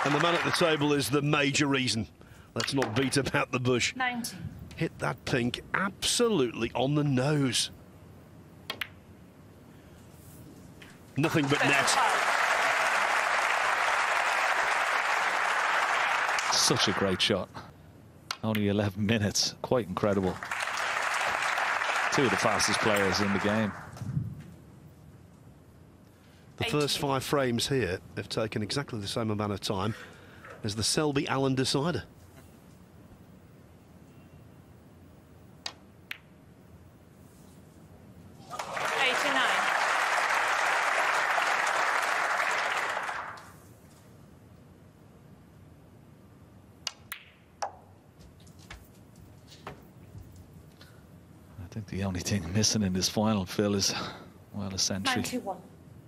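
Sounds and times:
audience applauding: 0.0s - 1.1s, 11.2s - 17.3s, 20.1s - 24.0s, 38.4s - 43.5s.

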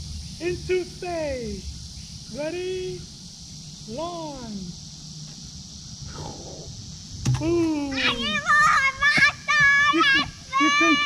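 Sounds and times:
high insect drone: 0.0s - 11.0s.

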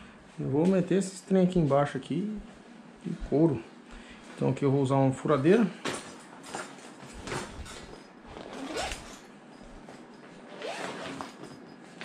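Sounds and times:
zipper sweeps: 8.3s - 9.2s, 10.4s - 11.4s.

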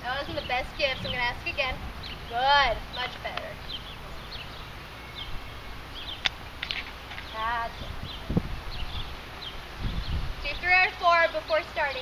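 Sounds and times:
low outdoor rumble: 0.0s - 12.0s
small bird chirping: 0.2s - 12.0s.

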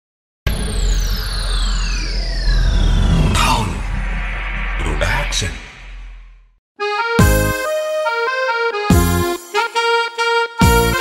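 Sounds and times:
deep low rumble: 0.5s - 6.6s
descending whooshing sweeps: 0.5s - 6.6s.

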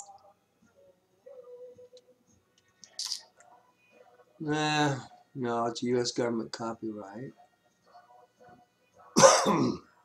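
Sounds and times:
man coughing: 9.2s - 9.8s.

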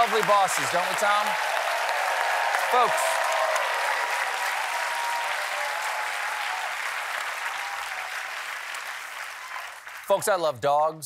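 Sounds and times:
audience applauding: 0.0s - 10.3s.

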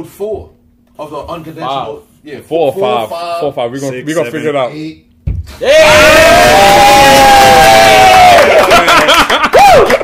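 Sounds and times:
men yelling and whooping: 5.6s - 10.0s
men laughing: 8.4s - 10.0s.

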